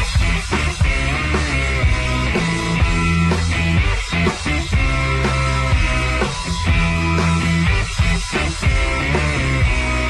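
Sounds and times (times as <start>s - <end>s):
distorted electric guitar riff: 0.0s - 10.0s
steady drum beat: 0.0s - 10.0s.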